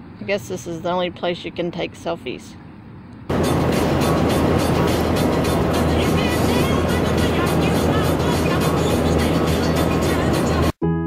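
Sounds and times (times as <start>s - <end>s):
road and engine noise: 0.0s - 10.8s
music playing: 3.3s - 11.0s.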